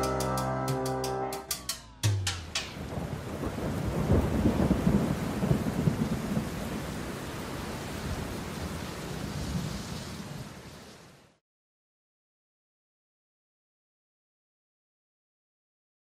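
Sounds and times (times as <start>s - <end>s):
thunder rumbling: 2.4s - 10.7s
rain hissing: 2.4s - 11.4s.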